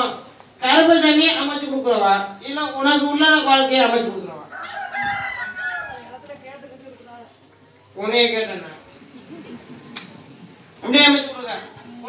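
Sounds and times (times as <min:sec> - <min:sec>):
rooster crowing: 0:04.4 - 0:06.6.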